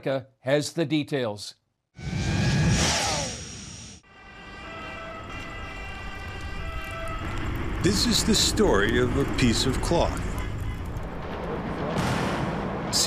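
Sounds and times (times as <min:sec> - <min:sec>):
emergency vehicle siren: 0:04.1 - 0:11.3
street noise: 0:04.8 - 0:13.0.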